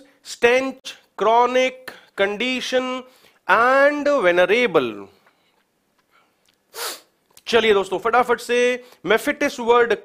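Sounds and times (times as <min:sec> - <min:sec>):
man breathing sharply: 0:03.1 - 0:03.4, 0:05.3 - 0:07.2, 0:08.8 - 0:09.0.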